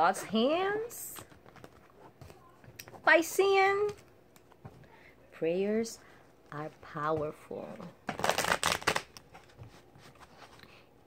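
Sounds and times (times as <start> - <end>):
cards being shuffled: 8.1 - 10.6.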